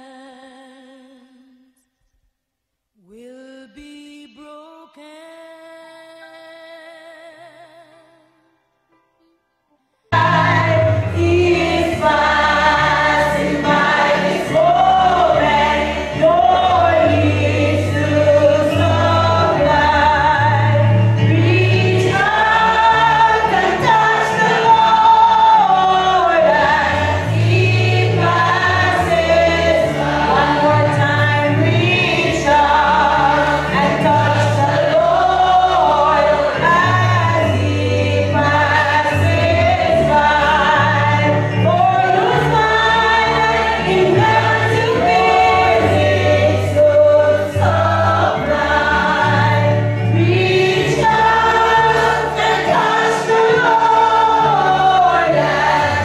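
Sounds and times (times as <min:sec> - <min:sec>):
woman singing gospel song: 0:00.0 - 0:01.7, 0:03.0 - 0:08.1, 0:13.6 - 0:56.0
backing voices singing: 0:10.1 - 0:56.0.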